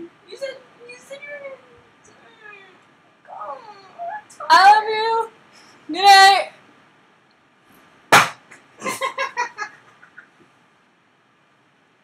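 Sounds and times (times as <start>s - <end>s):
woman making wordless sounds: 0.0s - 5.3s.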